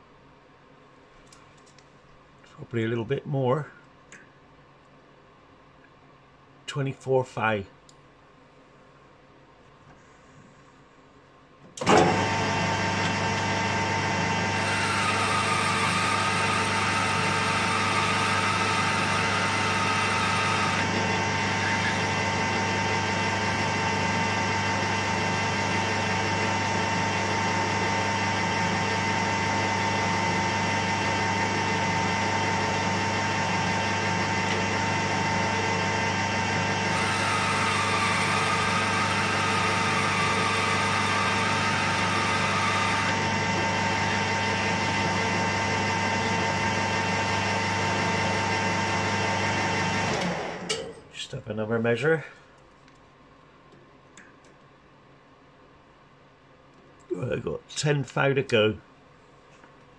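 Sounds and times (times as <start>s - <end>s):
lathe motor humming: 11.8s - 50.7s.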